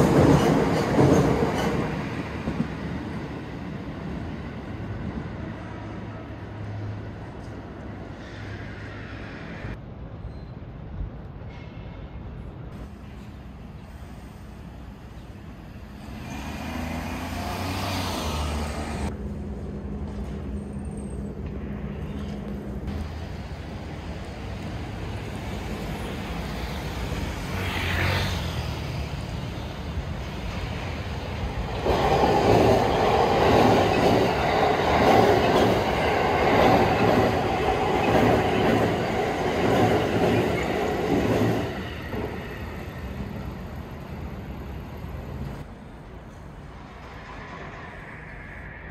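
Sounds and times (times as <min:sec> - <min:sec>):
train wheels clattering on rails: 0:00.0 - 0:02.9, 0:31.6 - 0:42.5
electric train passing: 0:00.0 - 0:10.1, 0:11.4 - 0:48.9.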